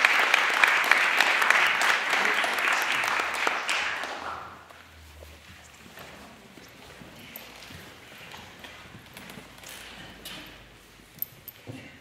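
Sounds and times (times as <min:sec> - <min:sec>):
audience shuffling: 0:00.0 - 0:11.1.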